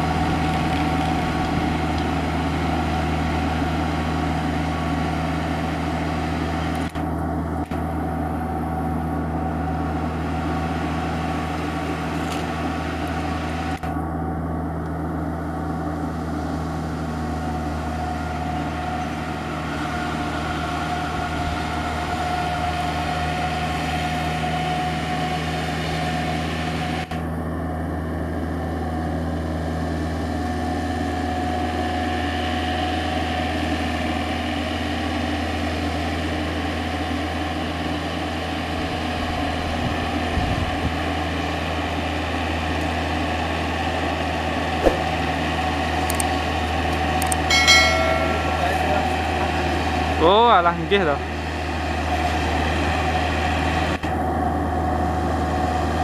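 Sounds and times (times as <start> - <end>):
tractor diesel engine running: 0.0 - 56.0.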